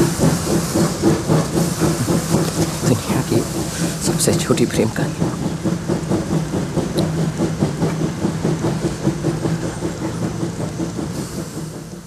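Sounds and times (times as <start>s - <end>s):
train low rumble: 0.0s - 12.0s
train wheels clattering on rails: 0.0s - 12.0s.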